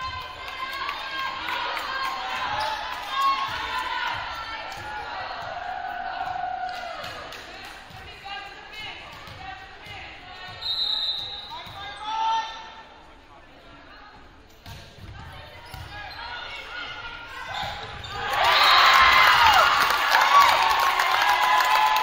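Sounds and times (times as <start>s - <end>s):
crowd cheering: 18.0s - 22.0s.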